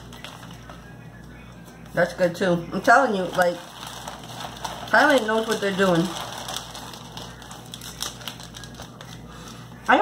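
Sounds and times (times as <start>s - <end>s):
plastic wrapper crinkling: 0.0s - 1.0s, 3.1s - 9.7s.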